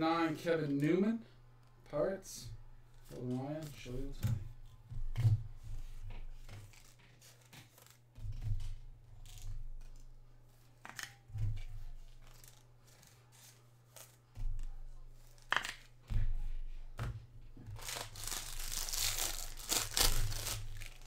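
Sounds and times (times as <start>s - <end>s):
rustling of cards: 2.9s - 21.0s
foil wrapper tearing and crinkling: 17.8s - 21.0s.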